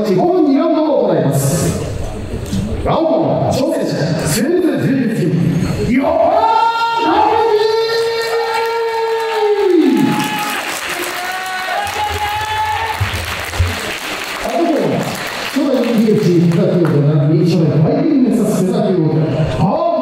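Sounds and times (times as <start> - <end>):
crowd applause: 8.2 - 17.0.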